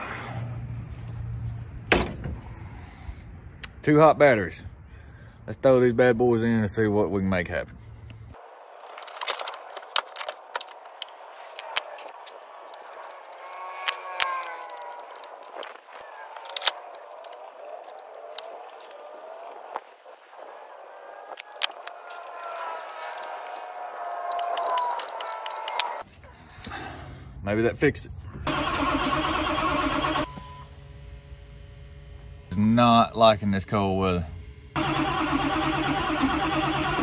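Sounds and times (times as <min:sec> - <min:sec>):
batteries clicking and clanking: 0:08.8 - 0:19.8, 0:21.3 - 0:26.0
faint voices: 0:10.8 - 0:26.1.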